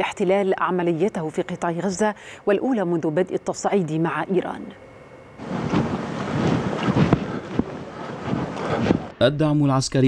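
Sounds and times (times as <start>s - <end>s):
wind buffeting microphone: 5.4s - 9.2s.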